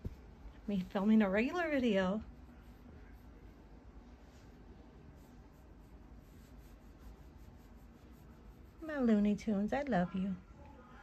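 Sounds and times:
hand rubbing cat fur: 0.0s - 9.6s.

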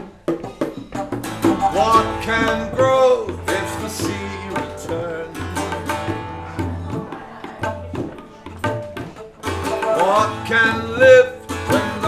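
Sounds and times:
tabla drums: 0.0s - 12.0s
flute melody: 9.5s - 12.0s.

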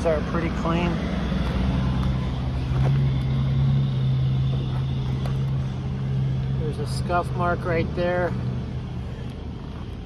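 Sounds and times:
low motor hum: 0.0s - 10.0s.

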